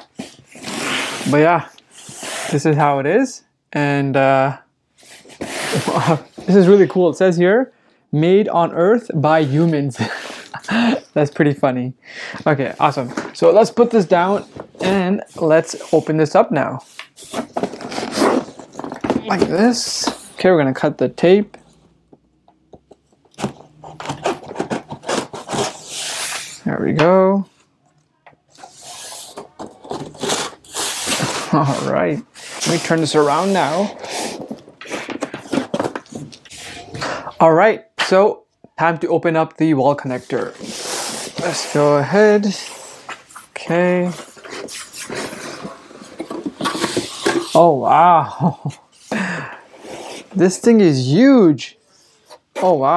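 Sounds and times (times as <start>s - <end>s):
packing tape being scraped open: 0.1s - 1.3s, 1.9s - 2.6s, 16.8s - 19.0s, 23.4s - 26.6s, 28.5s - 36.9s, 44.1s - 47.6s
cardboard box scraping: 17.3s - 19.8s.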